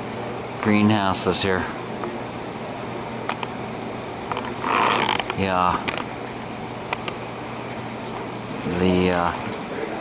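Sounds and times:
machinery humming: 0.0 - 8.9.

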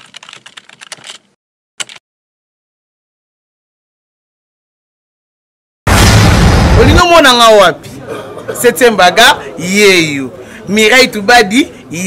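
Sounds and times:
keyboard key clicks: 1.8 - 2.0.

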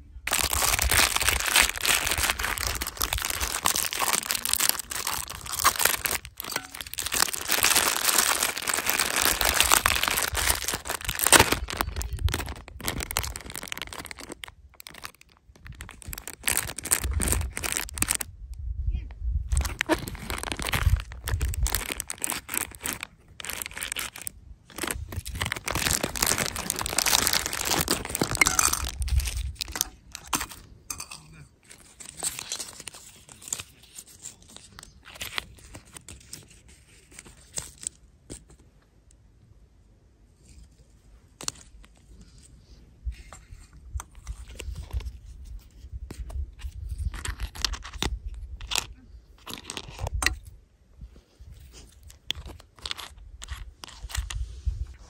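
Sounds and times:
plastic wrappers crinkling and tearing: 0.2 - 18.3, 19.5 - 38.5, 41.4 - 42.1, 44.0 - 50.4, 51.6 - 55.0.

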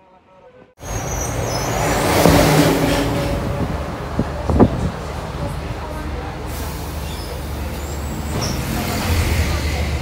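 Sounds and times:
road noise: 0.0 - 10.0
bus engine running: 0.8 - 10.0.

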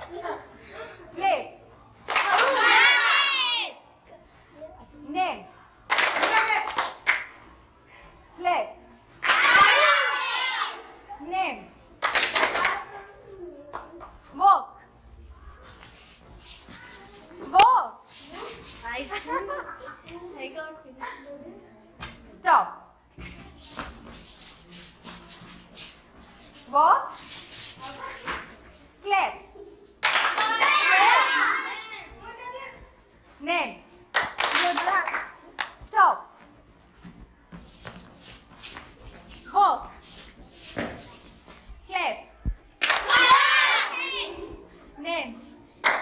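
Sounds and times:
children clapping: 2.0 - 3.0, 5.9 - 7.4, 9.2 - 10.0, 12.0 - 13.0, 30.0 - 31.1, 34.1 - 35.8, 42.8 - 43.8
children answering in chorus: 2.2 - 3.8, 9.2 - 10.9, 30.4 - 32.1, 42.8 - 44.5
children shouting: 2.2 - 3.8, 9.2 - 11.0, 30.2 - 32.1, 42.8 - 44.6
children's shuffling footsteps: 9.0 - 20.7, 23.0 - 46.0.

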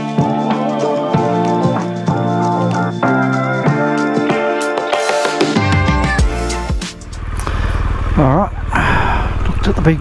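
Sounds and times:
motorcycle idling: 6.2 - 10.0.

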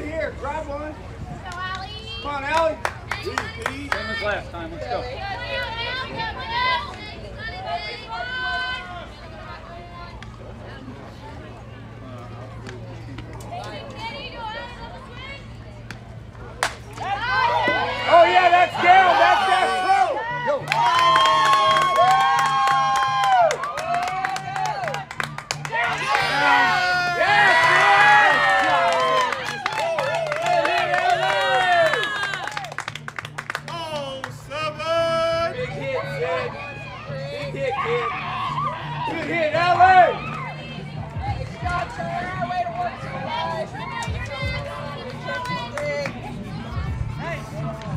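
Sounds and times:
crowd yelling and cheering: 0.0 - 47.9.

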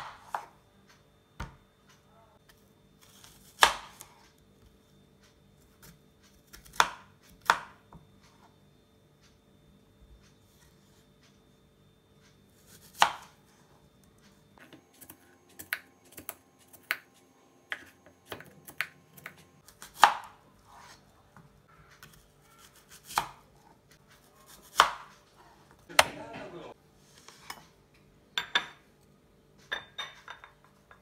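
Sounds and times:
knife slicing pear: 14.6 - 21.0, 24.2 - 25.2.

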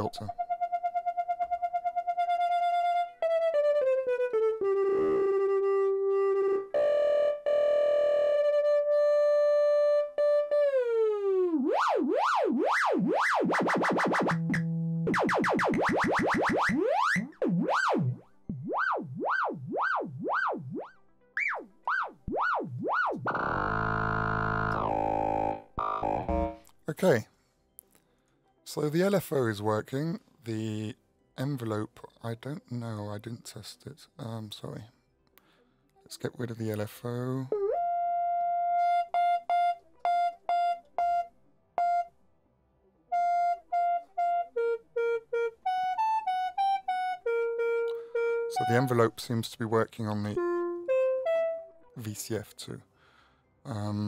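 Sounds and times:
synth pitch swooping up and down: 11.5 - 26.6
synth notes gliding in pitch: 21.4 - 26.6, 43.1 - 49.2
buzzy synth chord: 22.0 - 26.6.

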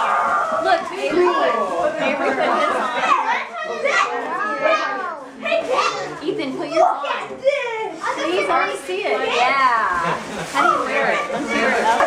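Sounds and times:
children talking: 0.0 - 12.0.

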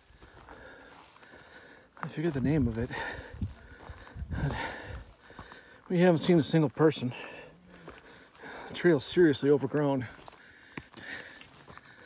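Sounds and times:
faint footsteps on rocky trail: 0.0 - 12.0.

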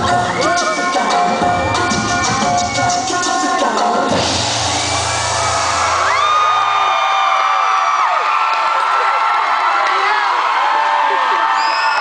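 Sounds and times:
audience cheering and screaming: 0.0 - 12.0
high-pitched whoops: 4.8 - 8.6, 11.0 - 12.0.

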